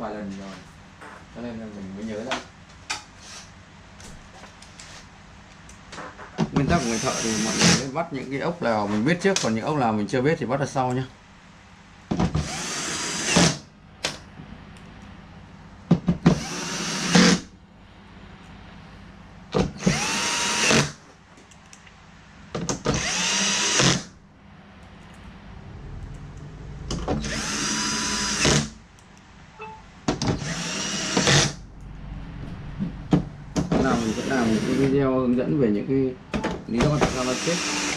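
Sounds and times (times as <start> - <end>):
electric screwdriver whining: 19.8 - 20.9, 23.0 - 24.1, 30.4 - 31.6.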